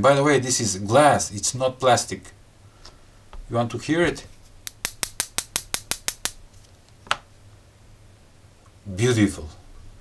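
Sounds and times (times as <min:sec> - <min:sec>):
metal tool tapping on glass: 0:04.7 - 0:06.4.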